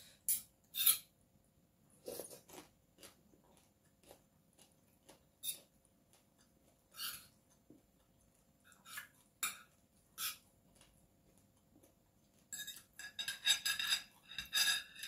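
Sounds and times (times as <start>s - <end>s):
cutlery on ceramic plate: 8.8s - 10.4s, 12.5s - 15.0s.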